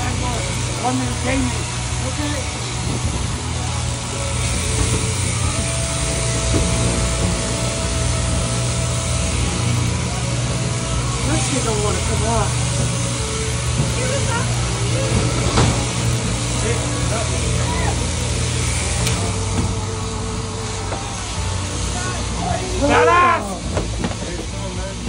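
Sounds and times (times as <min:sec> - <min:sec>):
shearing handpiece motor hum: 0:00.0 - 0:25.0.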